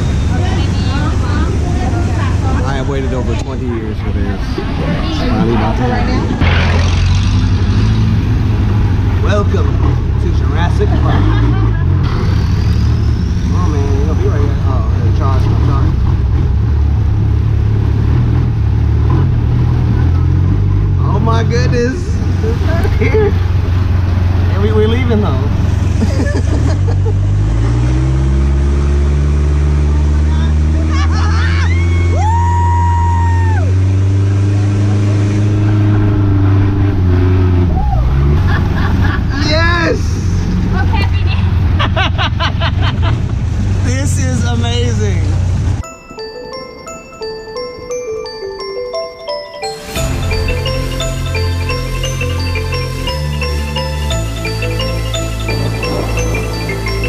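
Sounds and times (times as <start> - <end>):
boat engine running: 0.0 - 31.0, 32.9 - 39.4, 40.1 - 57.0.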